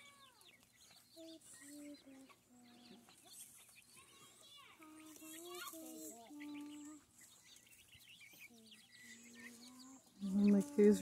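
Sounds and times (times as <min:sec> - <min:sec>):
chickens calling: 0:00.0 - 0:11.0.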